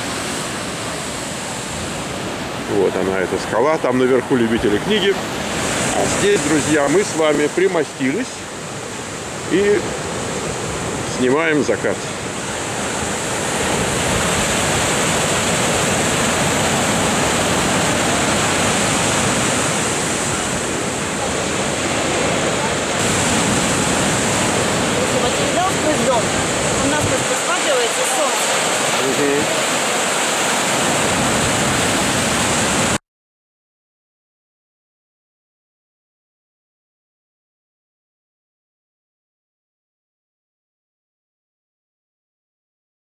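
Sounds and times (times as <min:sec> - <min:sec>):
ocean waves crashing on rocks: 0:00.0 - 0:33.0.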